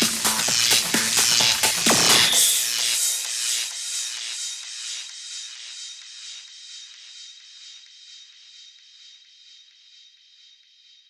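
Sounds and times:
faint held high tone: 0:02.0 - 0:02.9.

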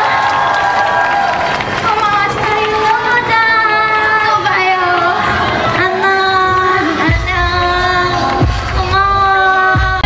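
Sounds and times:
woman singing pop with music: 0:02.2 - 0:10.0.

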